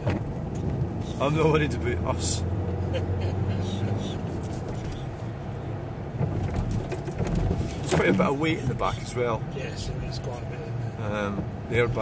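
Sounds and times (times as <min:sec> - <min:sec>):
engine and road rumble in car: 0:00.0 - 0:12.0.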